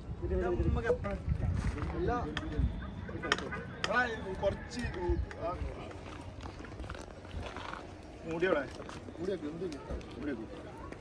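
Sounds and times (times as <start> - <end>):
men talking indistinctly: 0.0 - 6.2, 8.1 - 10.9.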